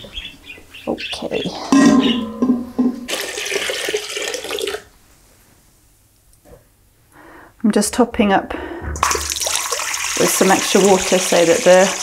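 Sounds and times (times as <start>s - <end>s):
water pouring into a pot: 3.1s - 4.9s, 9.0s - 12.0s.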